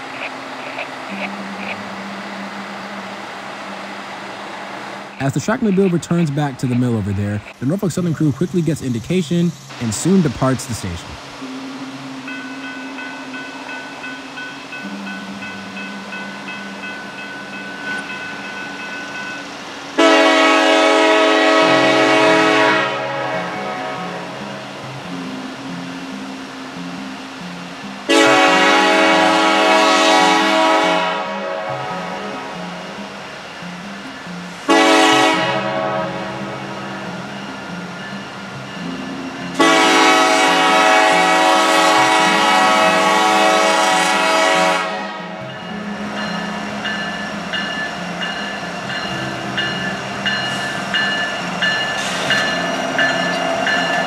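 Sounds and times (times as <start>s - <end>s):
diesel locomotive engines running: 0.0s - 54.0s
train air horn blasts: 20.0s - 25.4s, 28.1s - 33.1s, 34.7s - 37.4s, 39.5s - 46.8s.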